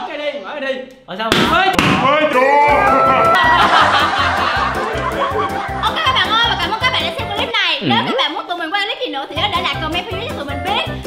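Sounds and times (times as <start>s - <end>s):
background music with steady beat: 2.6s - 8.2s
people laughing and snickering: 2.7s - 8.3s.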